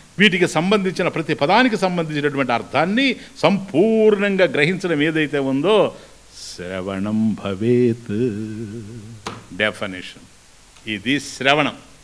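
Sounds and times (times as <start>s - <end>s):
man speaking into a microphone: 10.8s - 11.9s.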